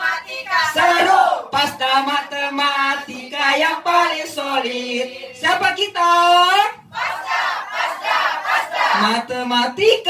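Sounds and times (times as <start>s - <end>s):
group shouting a chant: 0.0s - 1.6s, 7.0s - 9.1s.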